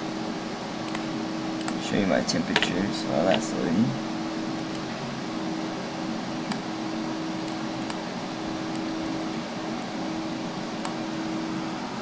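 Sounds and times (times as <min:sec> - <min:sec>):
computer cooling fans running: 0:00.0 - 0:12.0.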